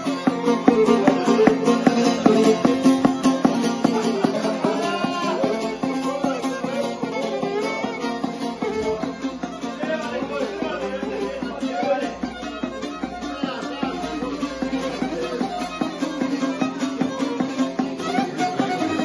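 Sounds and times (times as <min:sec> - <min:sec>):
fiddle melody: 0:00.0 - 0:19.0
lute strumming: 0:00.0 - 0:19.0.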